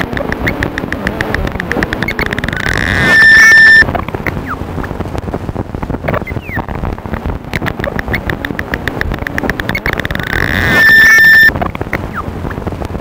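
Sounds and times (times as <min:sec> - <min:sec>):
rhythmic electronic clicks: 0:00.0 - 0:05.0, 0:06.1 - 0:12.6
loud steady electronic high tone: 0:01.8 - 0:03.9, 0:09.5 - 0:11.6
short falling electronic chirps: 0:02.0 - 0:03.8, 0:09.8 - 0:11.5.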